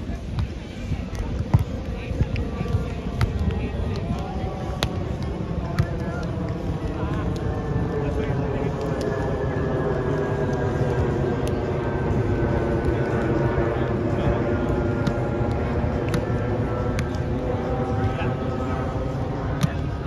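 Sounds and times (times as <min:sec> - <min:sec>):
propeller aircraft engine drone: 0:00.0 - 0:20.0.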